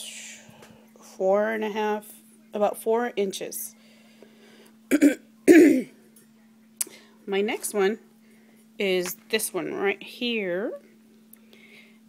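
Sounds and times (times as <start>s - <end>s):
woman coughing: 4.9s - 6.0s.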